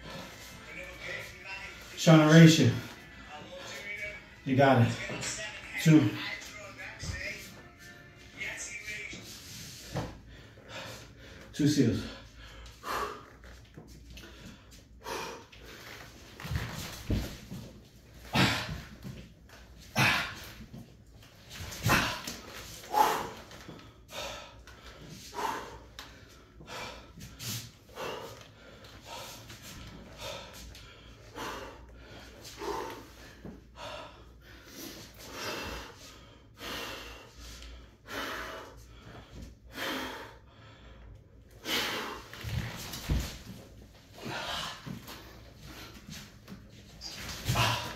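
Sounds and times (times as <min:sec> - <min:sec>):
man breathing hard: 0:09.6 - 0:19.2, 0:19.8 - 0:20.8, 0:21.7 - 0:47.9.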